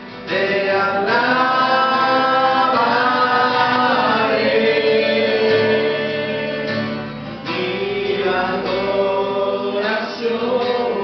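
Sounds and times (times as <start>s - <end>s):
acoustic guitar: 0.0s - 11.0s
woman and man singing: 0.0s - 11.0s.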